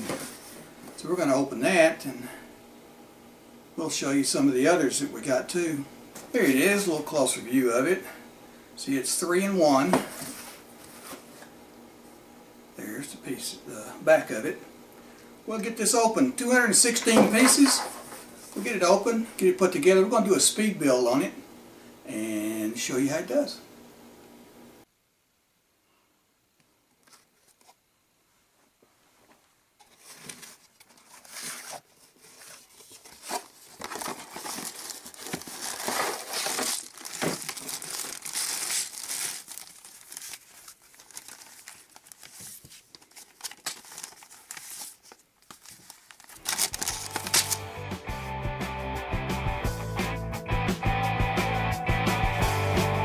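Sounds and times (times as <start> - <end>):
packaging crinkling and tearing: 30.0 - 47.7
rock music with guitar: 47.0 - 53.0.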